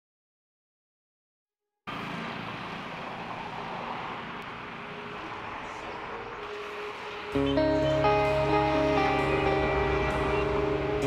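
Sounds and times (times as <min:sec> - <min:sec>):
steady rushing noise: 0:01.9 - 0:11.0.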